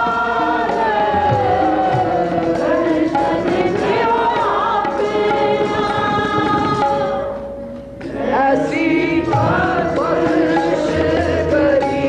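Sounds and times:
voices singing along: 0.0 - 7.4, 8.0 - 12.0
harmonium: 0.0 - 12.0
tabla: 0.0 - 12.0.

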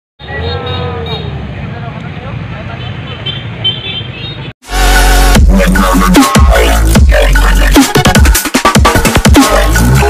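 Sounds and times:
motorcycles and cars passing: 0.2 - 4.6.

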